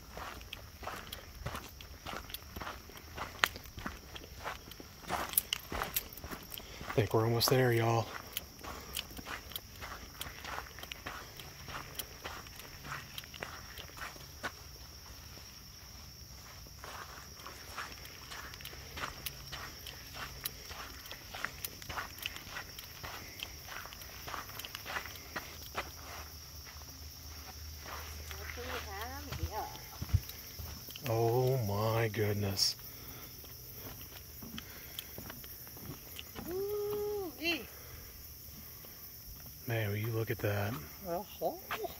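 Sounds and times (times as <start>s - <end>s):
footsteps on sandy trail: 0.0s - 41.9s
person speaking: 6.9s - 8.2s, 31.0s - 32.8s.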